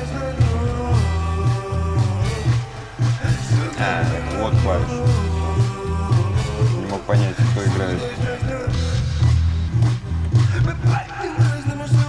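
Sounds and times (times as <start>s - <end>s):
electric bass line: 0.0s - 11.0s
drum beat: 0.4s - 12.0s.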